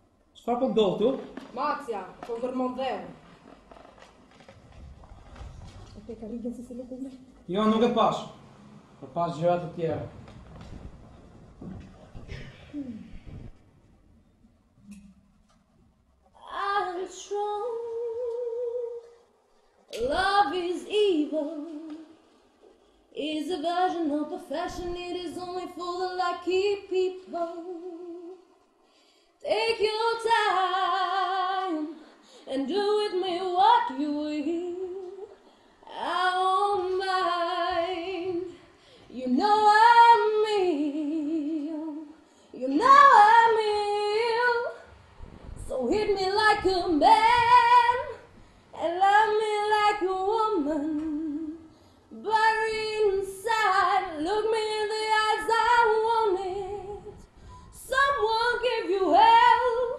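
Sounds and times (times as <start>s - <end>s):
woman singing: 16.4s - 19.2s, 20.0s - 22.2s, 23.2s - 28.5s, 29.4s - 44.9s, 45.6s - 59.9s
quick breath: 28.8s - 29.4s, 32.0s - 32.5s, 57.2s - 57.8s.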